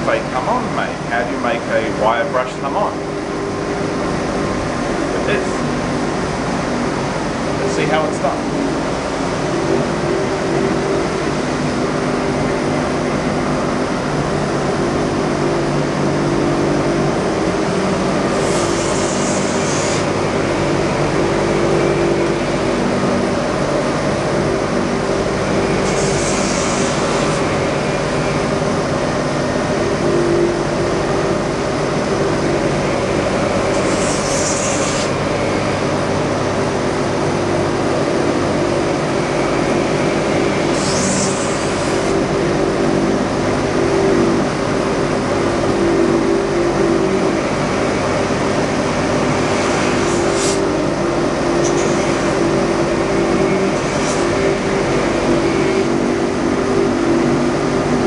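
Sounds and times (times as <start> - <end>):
wire brush wheel motor hum: 0.0 - 58.0
blade scratching on wire brush: 18.3 - 20.1, 25.8 - 27.5, 33.6 - 35.2, 53.6 - 54.6.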